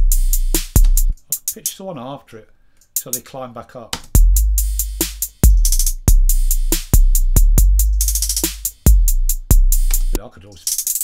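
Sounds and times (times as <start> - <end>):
booming kick drums: 0.0 - 1.1, 4.2 - 4.6
rapid hi-hats: 0.0 - 2.0, 2.8 - 3.4, 4.0 - 11.0
snare drum: 6.6 - 7.2, 8.1 - 9.0, 9.7 - 11.0.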